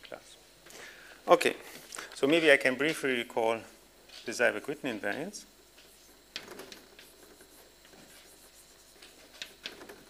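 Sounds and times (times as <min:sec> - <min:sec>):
chalk writing on blackboard: 0:05.6 - 0:10.0.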